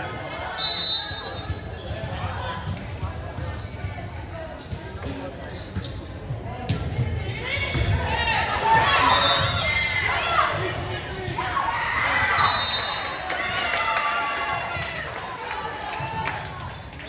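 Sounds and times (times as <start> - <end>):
referee's whistle: 0.5 - 1.6, 12.3 - 13.2.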